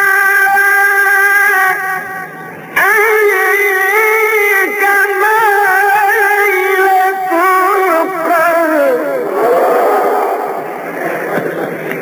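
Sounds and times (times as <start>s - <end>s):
man reciting melodically: 0.0s - 9.5s
many voices calling out: 8.6s - 11.4s.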